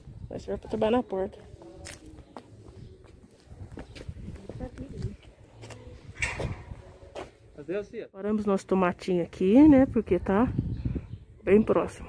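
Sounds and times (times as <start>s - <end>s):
low rumble on microphone: 9.6s - 11.4s.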